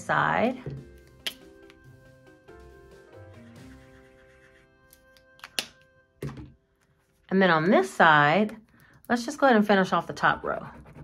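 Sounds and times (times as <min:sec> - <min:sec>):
background music: 0:00.0 - 0:08.2.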